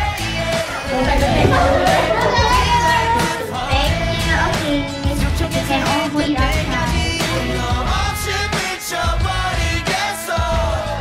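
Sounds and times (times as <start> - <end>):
pop music with beat: 0.0 - 11.0
young women laughing and shouting: 0.5 - 7.6.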